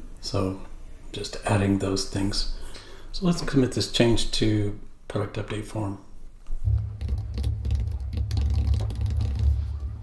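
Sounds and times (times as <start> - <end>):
steady low rumble: 6.6 - 8.4.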